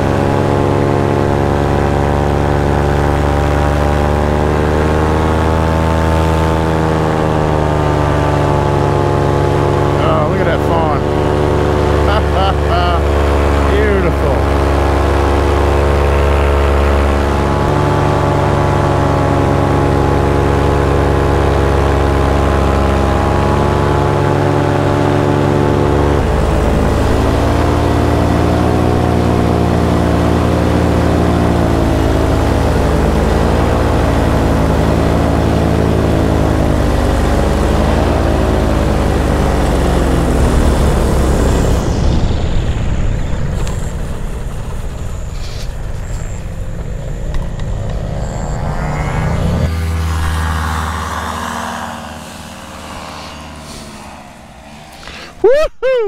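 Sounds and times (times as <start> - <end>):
paramotor engine and propeller: 0.0 - 56.0.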